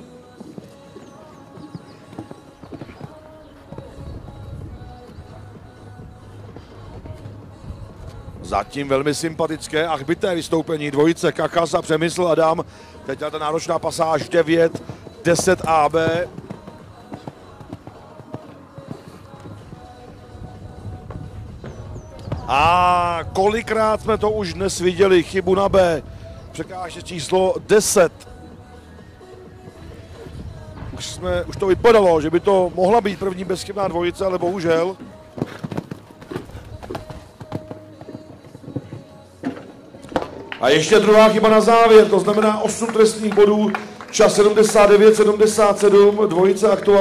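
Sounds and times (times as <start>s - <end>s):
hooves thudding on sand: 0.0s - 43.5s
faint background music: 0.0s - 47.0s.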